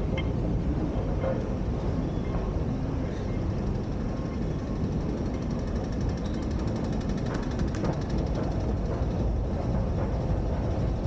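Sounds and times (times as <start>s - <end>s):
metro station rumble: 0.0s - 11.0s.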